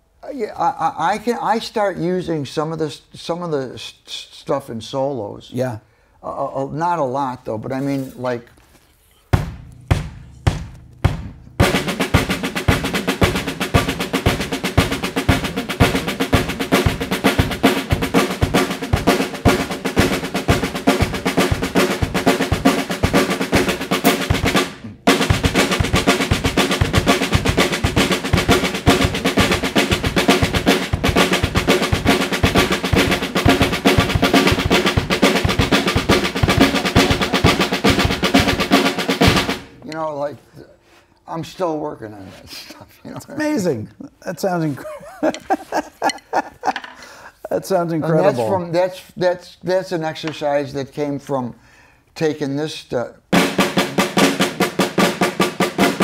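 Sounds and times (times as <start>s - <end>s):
drum played with sticks: 9.2s - 40.1s, 45.2s - 46.9s, 53.3s - 56.0s.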